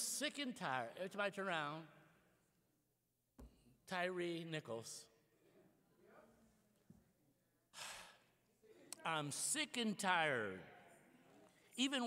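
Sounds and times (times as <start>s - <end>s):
man breathing: 7.7s - 8.4s.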